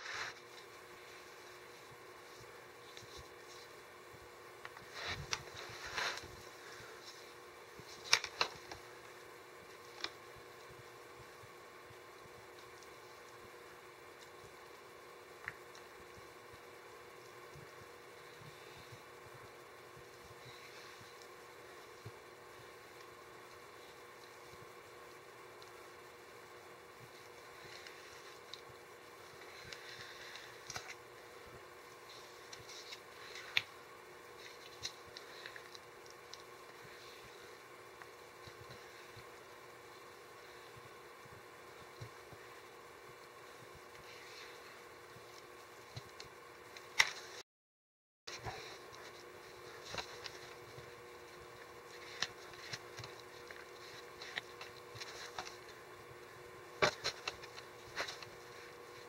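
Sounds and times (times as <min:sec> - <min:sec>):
faint hum: 0:00.0 - 0:47.4, 0:48.3 - 0:59.0.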